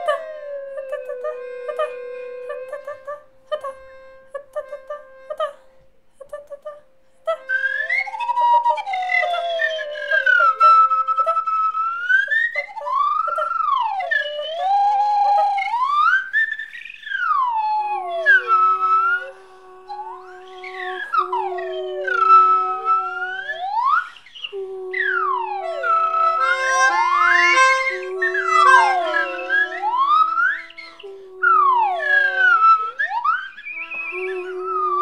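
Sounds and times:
melodica notes: 0:01.4 - 0:12.0, 0:17.6 - 0:35.0
sliding whistle tones: 0:07.5 - 0:35.0.

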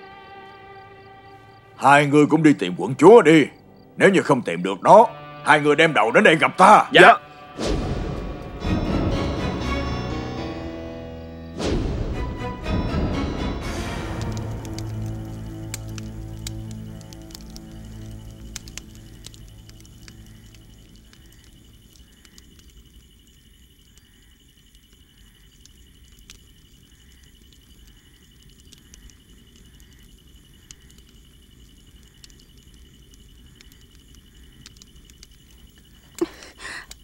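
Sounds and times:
dramatic background music: 0:03.5 - 0:21.0
campfire crackling and popping: 0:11.6 - 0:37.0.

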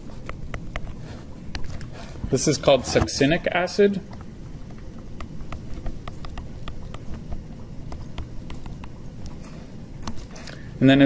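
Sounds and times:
stylus tapping on tablet screen: 0:05.2 - 0:09.4.

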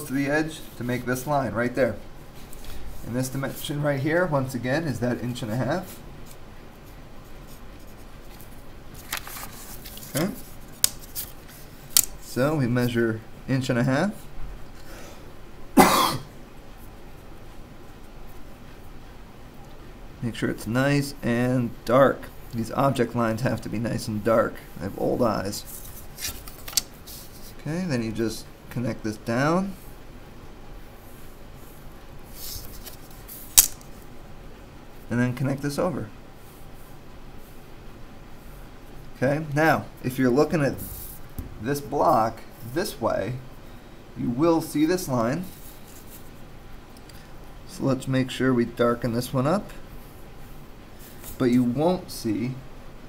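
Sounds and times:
air circulator hum: 0:00.0 - 0:53.0
ruler rustling on paper: 0:05.4 - 0:12.4, 0:24.9 - 0:27.6, 0:31.0 - 0:34.1, 0:45.4 - 0:46.4.

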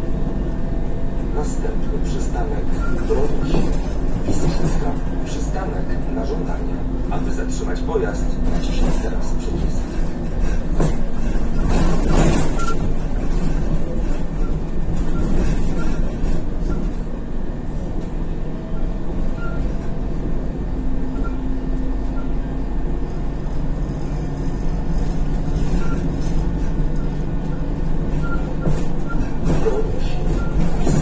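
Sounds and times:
bus engine and road noise: 0:00.0 - 0:31.0.

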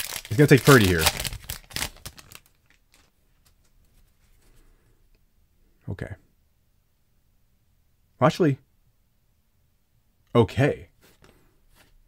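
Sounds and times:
foil wrapper tearing and crinkling: 0:00.0 - 0:03.1
cards rustling: 0:00.0 - 0:04.5.

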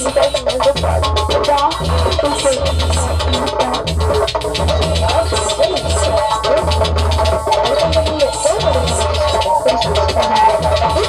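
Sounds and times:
electronic music: 0:00.0 - 0:11.0.

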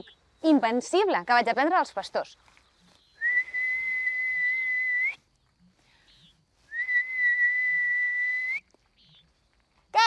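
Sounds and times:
person whistling high note: 0:03.2 - 0:05.2, 0:06.7 - 0:08.6.

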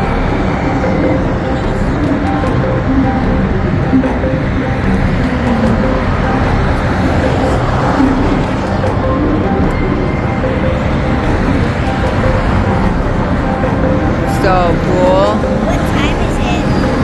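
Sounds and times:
city traffic noise: 0:00.0 - 0:17.0
spooky music with voice over speakers: 0:00.0 - 0:17.0.

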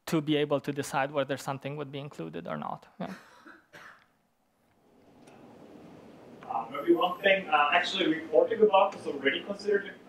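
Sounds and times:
person coughing: 0:03.0 - 0:04.1.

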